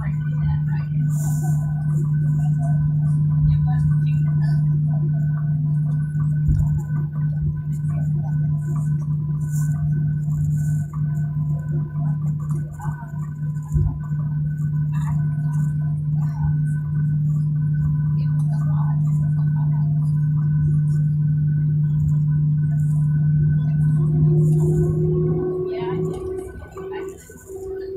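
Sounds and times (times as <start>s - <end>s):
faint voices: 0.0s - 27.9s
jet engines humming in cabin: 0.0s - 27.9s.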